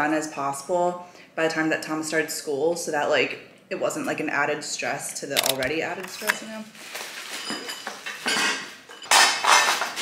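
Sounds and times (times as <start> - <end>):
plastic-wrapped parts rustling and clinking: 5.4 - 10.0.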